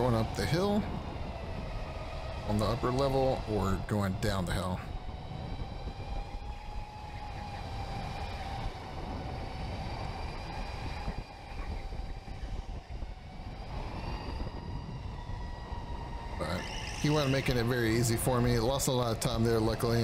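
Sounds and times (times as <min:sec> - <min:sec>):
low rumble of kart: 0:00.0 - 0:20.0
electric motor whining: 0:05.3 - 0:18.4.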